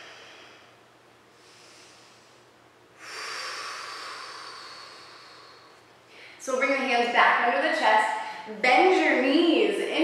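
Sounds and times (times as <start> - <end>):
woman breathing: 0.0 - 6.5.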